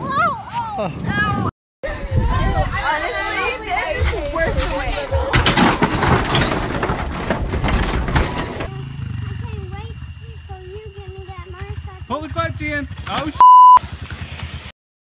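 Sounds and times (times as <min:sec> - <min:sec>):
voices: 0:00.0 - 0:06.2, 0:08.7 - 0:13.4
yard game toppling with clatter: 0:03.9 - 0:08.7
dirt bike engine idling: 0:08.6 - 0:14.7.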